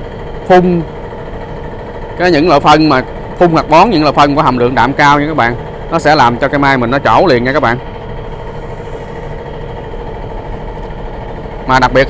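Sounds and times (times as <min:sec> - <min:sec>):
machine humming steadily: 0:00.0 - 0:12.0.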